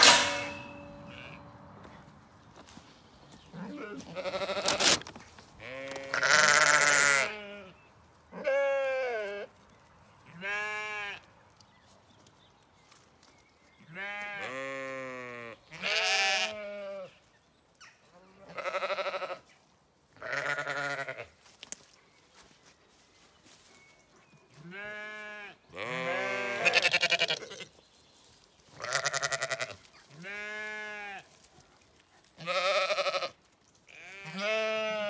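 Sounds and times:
sheep bleating: 0:00.0 - 0:01.6, 0:03.5 - 0:05.0, 0:05.6 - 0:07.7, 0:08.4 - 0:09.5, 0:10.3 - 0:11.2, 0:13.9 - 0:17.1, 0:18.3 - 0:19.4, 0:20.2 - 0:21.3, 0:24.6 - 0:27.7, 0:28.8 - 0:31.2, 0:32.4 - 0:35.0.

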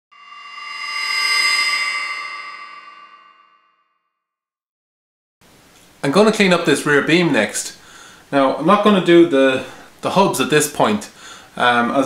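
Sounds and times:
metallic ringing tone: 0:00.1 - 0:03.9.

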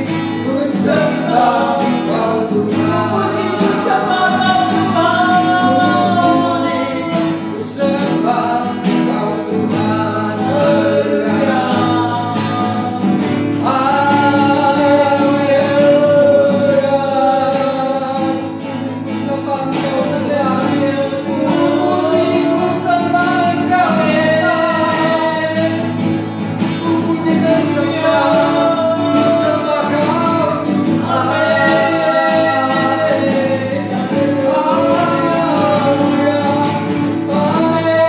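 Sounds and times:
woman singing along: 0:00.0 - 0:18.2, 0:19.9 - 0:26.0, 0:26.7 - 0:38.0
acoustic guitar: 0:00.0 - 0:38.0
man singing: 0:00.0 - 0:38.0.

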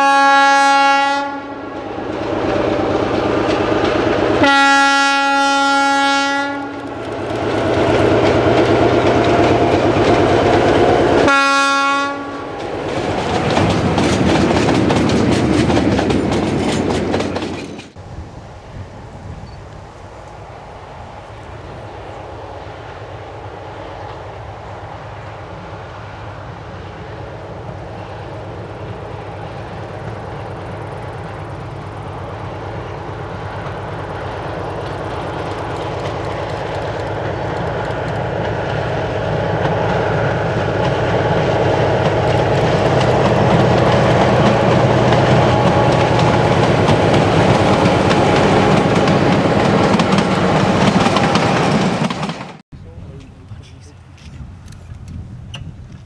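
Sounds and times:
diesel railcar passing: 0:00.0 - 0:56.0
train wheels on rails: 0:00.0 - 0:56.0.

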